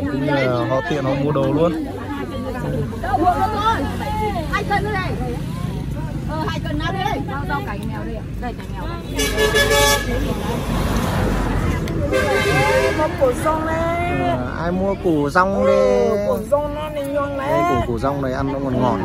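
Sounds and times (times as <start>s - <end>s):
voices chattering: 0.0s - 19.0s
vehicle horn toots: 9.2s - 10.4s, 12.1s - 13.4s.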